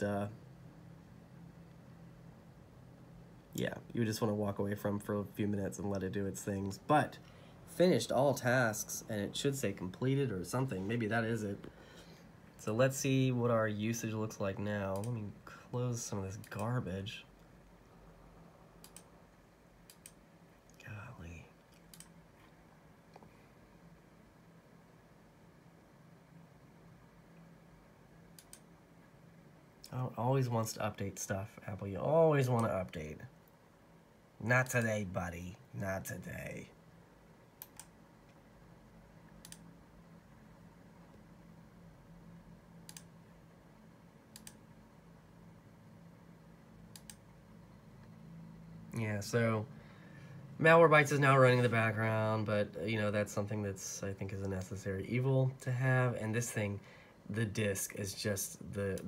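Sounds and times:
faint low hum: 0:00.0 - 0:59.0.

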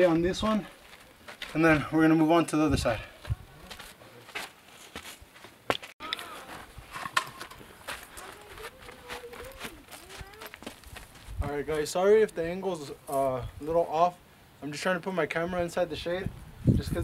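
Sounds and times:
footsteps on gritty ground: 0:00.0 - 0:11.9.

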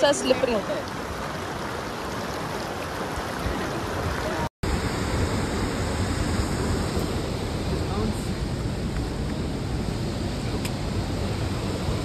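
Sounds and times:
stream water rushing over stones: 0:00.0 - 0:08.4.

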